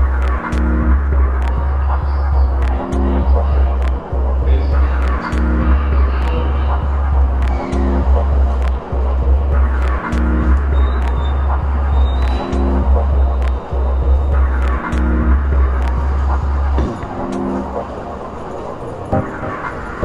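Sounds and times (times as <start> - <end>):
deep sustained sub-bass: 0.0 - 17.8
light ticking percussion: 0.0 - 18.0.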